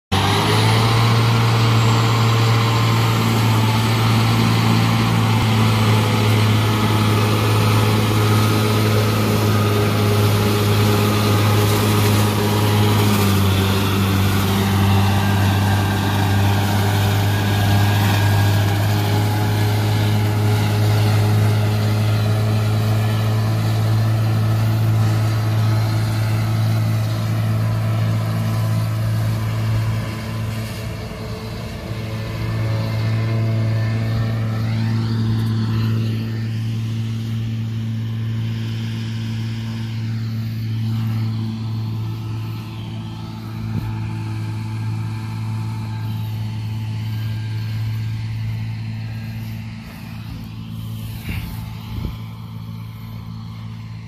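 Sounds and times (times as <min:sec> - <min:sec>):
disc mower cutting grass: 0:00.1 - 0:54.0
tractor diesel engine running: 0:00.1 - 0:54.0.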